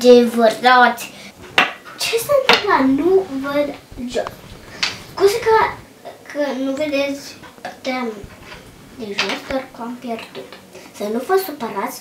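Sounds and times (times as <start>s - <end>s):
child's voice: 2.0s - 10.4s, 11.0s - 12.0s.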